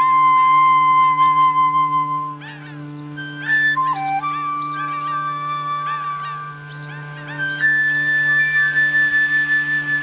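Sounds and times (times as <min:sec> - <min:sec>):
chirping musical figures: 0:00.0 - 0:10.0
flute-like long note: 0:00.0 - 0:10.0
steady low drone: 0:00.0 - 0:10.0.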